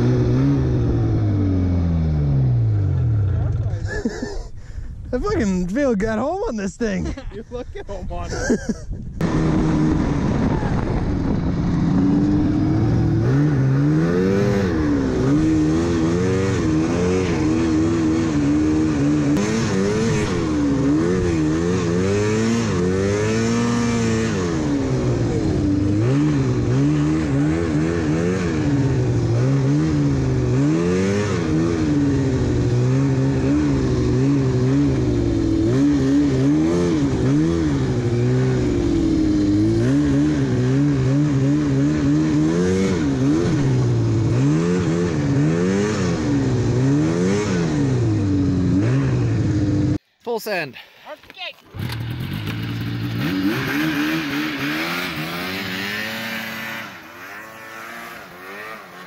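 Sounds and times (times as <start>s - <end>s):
snowmobile engine revving: 0.0s - 4.5s, 8.2s - 50.7s, 51.7s - 59.0s.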